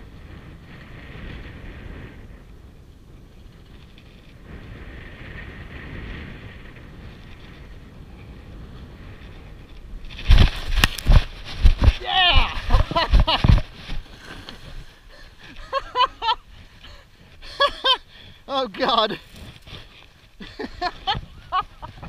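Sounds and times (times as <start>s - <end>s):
person crying out: 12.0s - 12.7s
person breathing hard: 14.2s - 15.7s, 16.5s - 18.5s.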